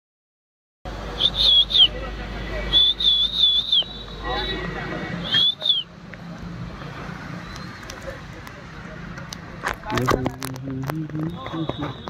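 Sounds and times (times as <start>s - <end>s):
high whistled notes: 2.7s - 4.1s.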